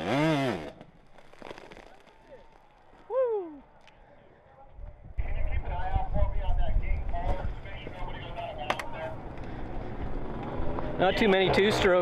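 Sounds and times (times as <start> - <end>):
distant voices: 1.8 - 12.0
wind rumbling on microphone: 4.7 - 8.4.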